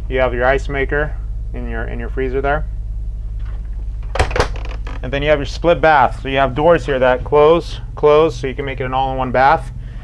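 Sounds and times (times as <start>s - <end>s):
steady low hum: 0.0s - 10.0s
refrigerator doors knocking shut: 4.1s - 5.0s.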